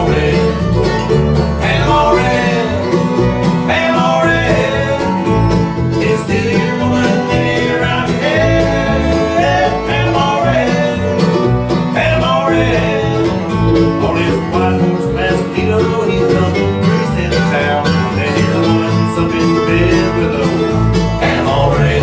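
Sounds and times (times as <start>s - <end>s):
bluegrass band instrumental: 0.0s - 22.0s.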